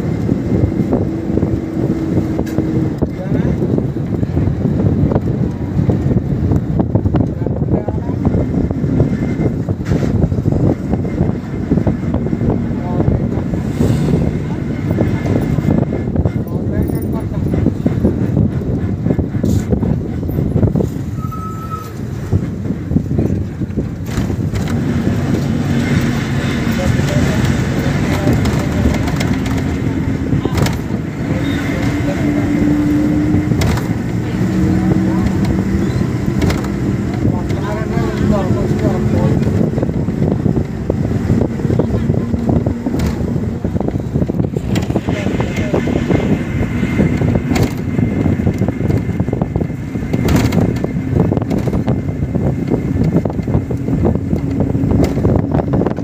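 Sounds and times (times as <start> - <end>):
bus engine and road noise: 0.0 - 56.0
wind rushing past window: 0.0 - 56.0.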